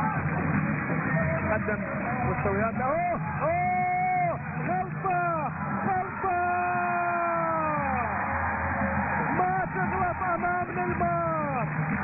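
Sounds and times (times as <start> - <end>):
commentator shouting: 2.6 - 8.2, 9.3 - 11.7.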